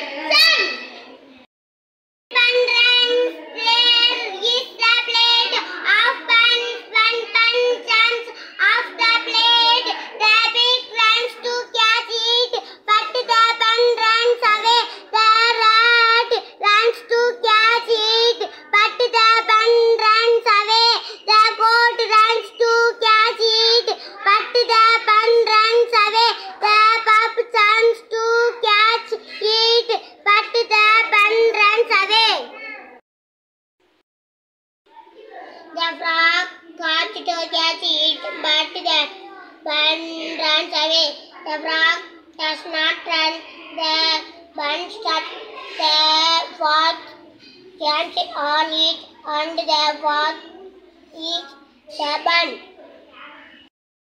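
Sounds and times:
boy reading aloud in sing-song: 0:02.3 - 0:33.0, 0:34.9 - 0:53.7.

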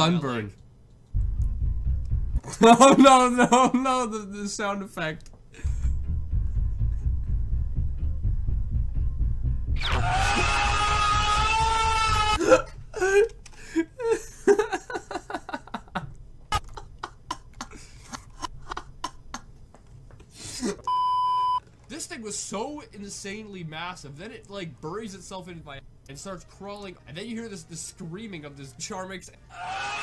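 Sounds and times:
deep loud rumbling: 0:01.2 - 0:02.5, 0:05.6 - 0:11.9
man chuckling: 0:05.6 - 0:07.3, 0:12.4 - 0:19.6
long high-pitched scream: 0:09.8 - 0:12.4, 0:29.5 - 0:30.0.

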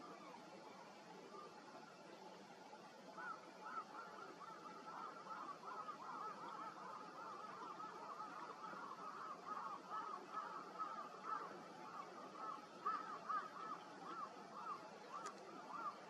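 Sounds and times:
waterfowl honking: 0:03.2 - 0:16.0.

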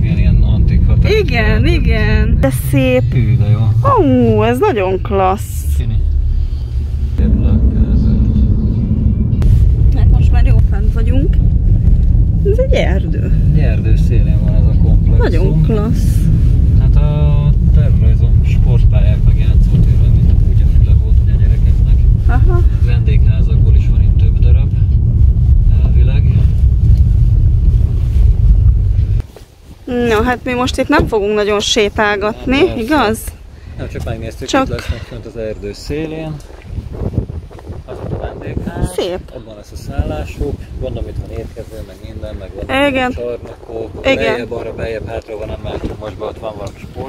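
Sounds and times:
car cabin engine and road noise: 0:00.0 - 0:47.0.

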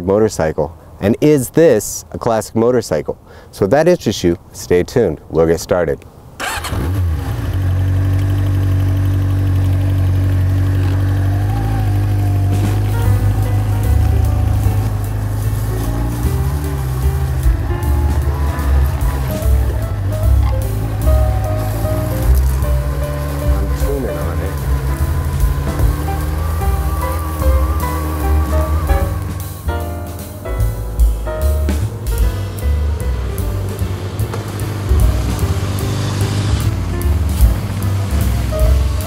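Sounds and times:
motorcycle riding away: 0:06.4 - 0:29.9, 0:31.7 - 0:39.0
motorcycle engine starting: 0:06.4 - 0:39.0
music: 0:11.0 - 0:39.0.

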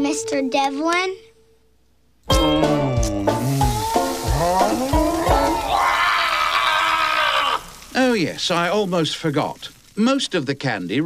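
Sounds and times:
cartoon character's strained cry: 0:03.6 - 0:07.8.

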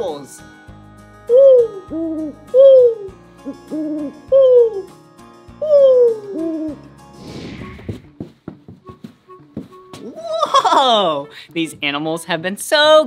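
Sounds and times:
people imitating owl hoots: 0:01.3 - 0:04.9, 0:05.6 - 0:06.8.

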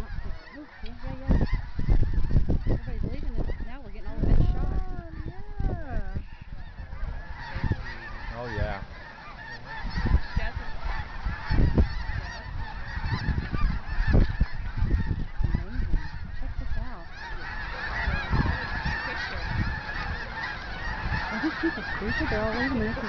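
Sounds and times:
flock of cranes and geese calling: 0:00.0 - 0:23.0.

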